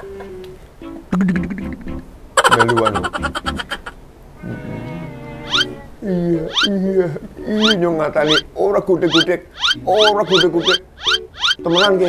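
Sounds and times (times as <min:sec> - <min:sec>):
high upward-sliding chirps: 0:01.1 - 0:02.8, 0:05.4 - 0:05.8, 0:06.5 - 0:06.8, 0:07.5 - 0:12.0
people talking: 0:02.4 - 0:03.3, 0:06.0 - 0:10.8, 0:11.6 - 0:12.0.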